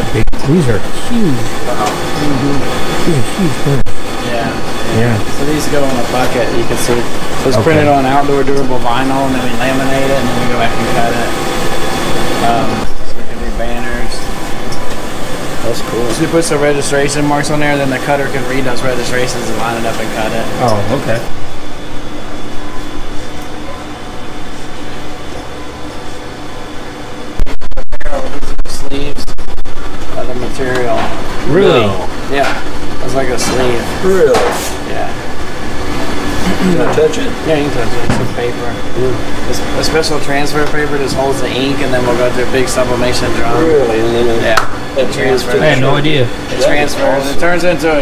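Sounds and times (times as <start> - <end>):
person talking: 0.0 - 5.3, 7.4 - 8.7
printer humming: 0.0 - 48.0.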